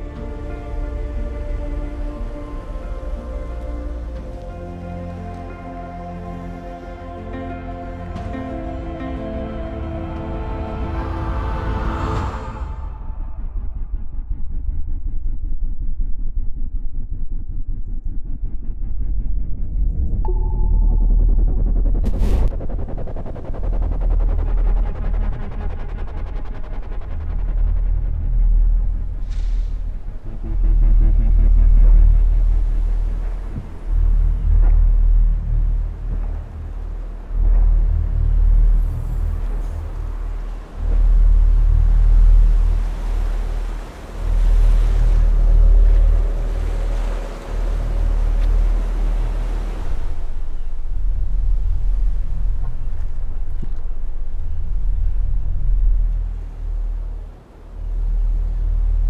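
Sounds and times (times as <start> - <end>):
deep rumbling drone: 0.0 - 59.0
faint held tone: 20.2 - 22.0
choppy lake water: 23.2 - 59.0.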